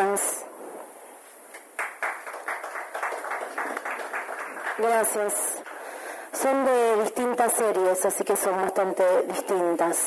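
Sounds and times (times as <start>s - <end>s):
audience clapping: 1.5s - 5.9s.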